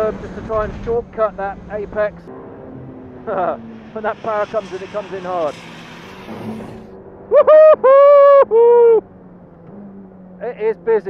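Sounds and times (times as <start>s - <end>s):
race car engine at high revs: 0.0s - 11.0s.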